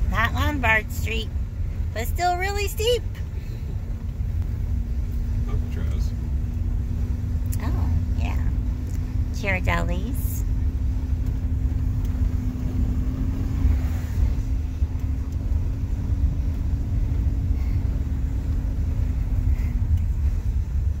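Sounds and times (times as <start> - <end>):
steady hum: 0.0 - 21.0
van engine and road rumble: 0.0 - 21.0.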